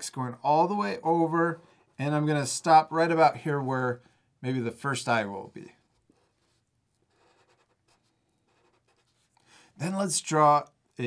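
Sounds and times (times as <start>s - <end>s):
marker scratching on paper: 5.8s - 9.4s.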